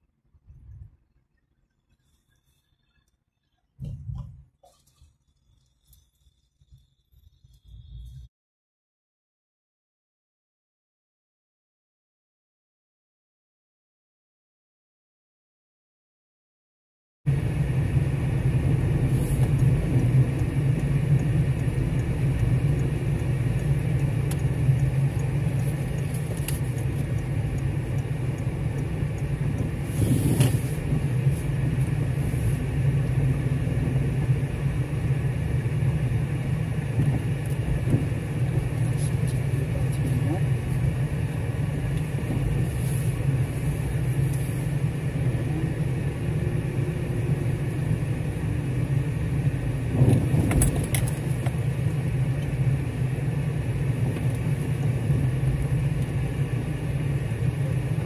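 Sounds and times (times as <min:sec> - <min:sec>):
car engine and road noise: 0:00.0 - 0:08.3, 0:17.3 - 0:58.0.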